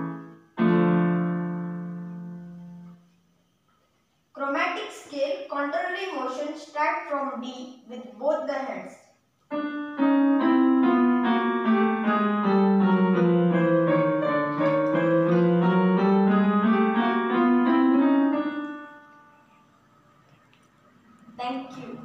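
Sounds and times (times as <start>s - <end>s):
electronic keyboard piano scale: 0.0s - 3.1s, 9.5s - 19.9s.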